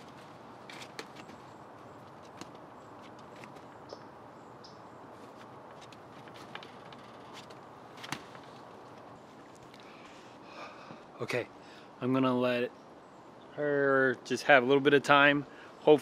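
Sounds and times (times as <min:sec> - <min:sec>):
outdoor background hiss: 0:00.0 - 0:16.0.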